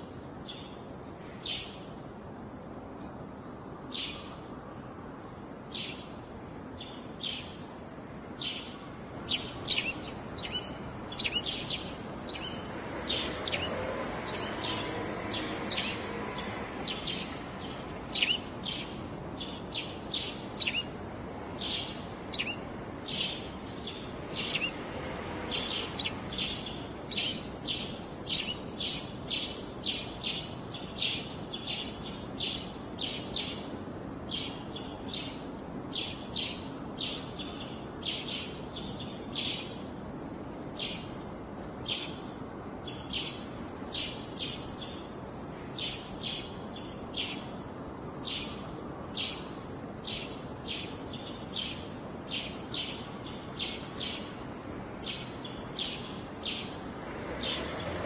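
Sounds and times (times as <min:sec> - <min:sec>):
steady background hiss: 0:00.0 - 0:58.0
small bird chirping: 0:08.4 - 0:21.0, 0:21.6 - 0:24.9, 0:25.5 - 0:33.6, 0:55.0 - 0:56.8.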